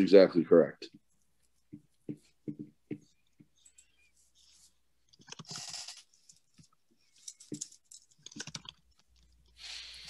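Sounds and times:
typing on computer keyboard: 5.1 - 6.0, 7.5 - 9.1.

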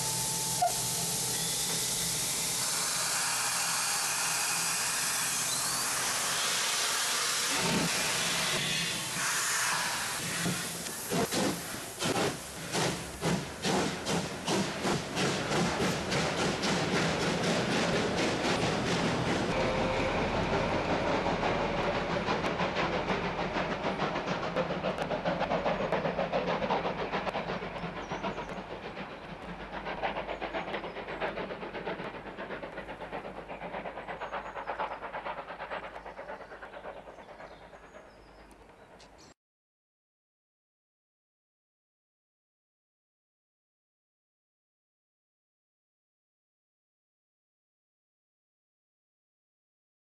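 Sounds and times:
steam locomotive exhaust chuffs: 0.0 - 39.2
running noise of steam and train: 0.0 - 39.4.

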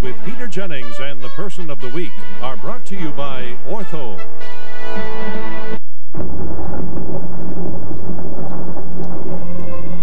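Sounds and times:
thunder: 6.1 - 10.0
heavy rain: 6.4 - 10.0.

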